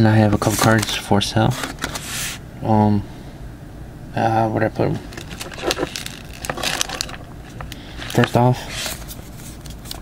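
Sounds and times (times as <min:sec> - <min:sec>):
rustling scrape: 0:00.4 - 0:00.9, 0:01.5 - 0:02.4, 0:05.1 - 0:10.0.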